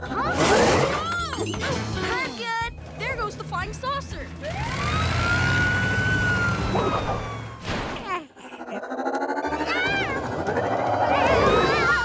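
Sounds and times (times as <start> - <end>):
cartoon fire truck siren wailing: 4.6 - 7.6, 9.4 - 12.0.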